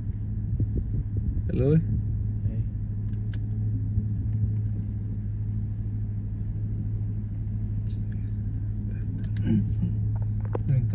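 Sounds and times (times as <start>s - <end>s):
car engine idling low: 0.0s - 10.9s.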